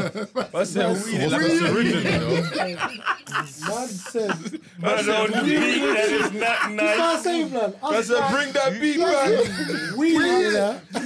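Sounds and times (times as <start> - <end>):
men laughing: 0.0 - 7.4, 9.0 - 11.0.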